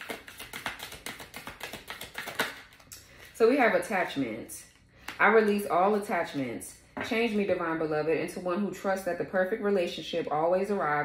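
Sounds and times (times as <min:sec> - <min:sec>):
cards being shuffled by hand: 0:00.0 - 0:03.4.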